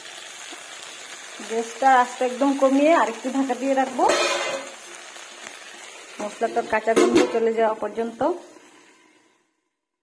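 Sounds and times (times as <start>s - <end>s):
vegetables sizzling in a pan: 0.0s - 9.8s
metal spatula scraping pan: 4.0s - 4.8s.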